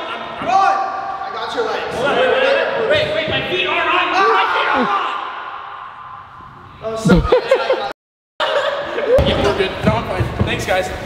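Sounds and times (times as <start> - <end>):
men calling out: 7.0 - 7.8.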